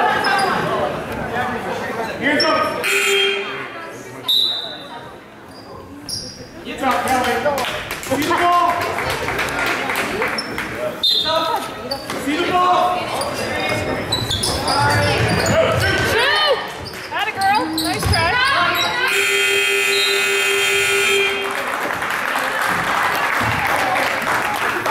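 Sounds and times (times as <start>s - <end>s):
crowd voices: 0.0s - 24.9s
shoe squeaks: 5.5s - 6.6s, 10.3s - 12.2s, 13.1s - 19.1s
basketball bouncing on hardwood: 17.9s - 18.4s
scoreboard buzzer: 19.0s - 21.4s.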